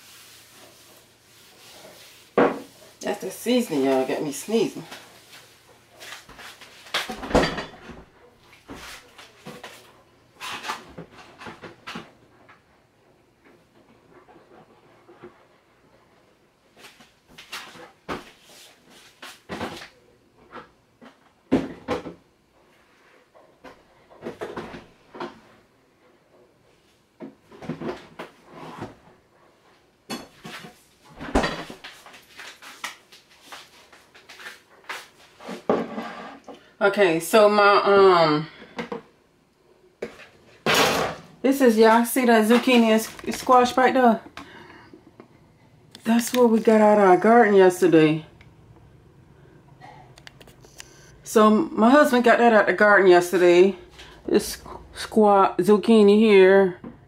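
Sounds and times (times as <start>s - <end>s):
kitchen objects knocking and clunking: 7.0s - 8.1s.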